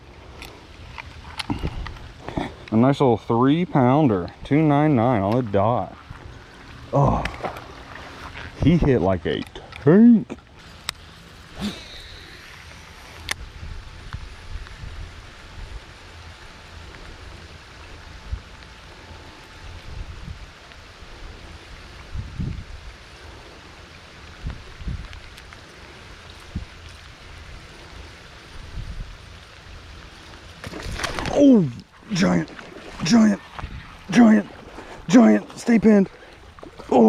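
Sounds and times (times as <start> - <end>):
rain falling on a pond: 0.0 - 8.3, 22.7 - 37.0.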